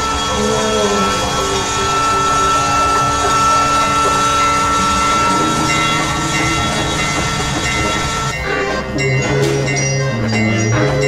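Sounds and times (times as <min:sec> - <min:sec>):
held high tone: 0:00.0 - 0:11.0
steady low drone: 0:00.0 - 0:11.0.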